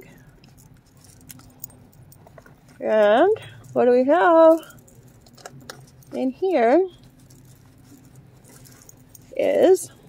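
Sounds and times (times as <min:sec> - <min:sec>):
low steady hum: 0:00.0 - 0:10.0
bag rustling: 0:00.4 - 0:10.0.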